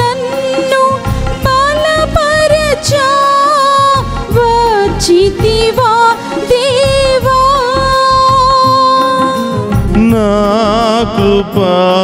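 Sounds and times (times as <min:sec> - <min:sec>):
musical accompaniment: 0:00.0 - 0:12.0
person singing with vibrato: 0:00.0 - 0:12.0.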